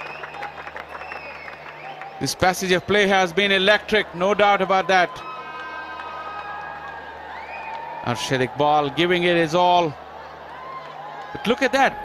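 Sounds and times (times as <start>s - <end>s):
hand claps: 0.0s - 2.2s.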